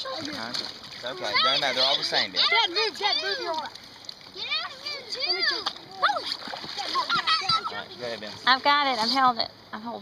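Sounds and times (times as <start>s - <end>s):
river water splashing: 0.0s - 10.0s
children calling out: 1.3s - 3.7s, 4.4s - 7.9s.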